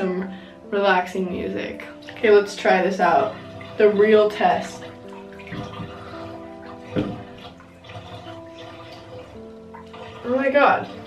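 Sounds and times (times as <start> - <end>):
slow music with bell-like tones: 0.0 - 11.0
water moving in a bathtub: 0.0 - 11.0.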